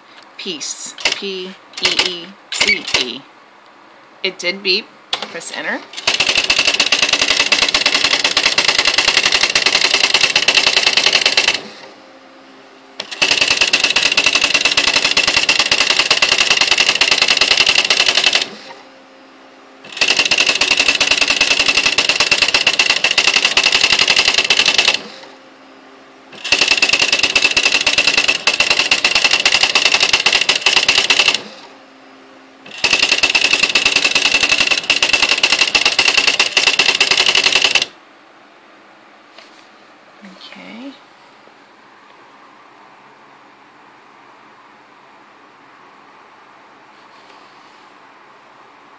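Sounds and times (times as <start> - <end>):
faint motor hum: 0.0 - 48.9
typewriter character strikes: 1.0 - 3.2, 6.0 - 11.6, 13.0 - 18.5, 19.9 - 25.0, 26.4 - 31.4, 32.7 - 37.9.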